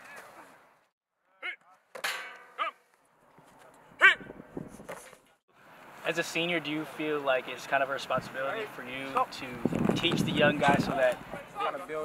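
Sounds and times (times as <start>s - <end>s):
metallic clang and ring: 2.0s - 2.6s.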